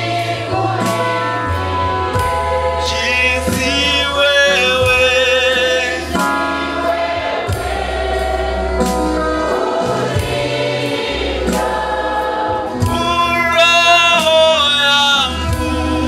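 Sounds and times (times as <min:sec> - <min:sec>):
choir singing a hymn: 0:00.0 - 0:16.0
held bass notes: 0:00.0 - 0:16.0
man singing into microphone: 0:02.8 - 0:06.4, 0:12.8 - 0:16.0.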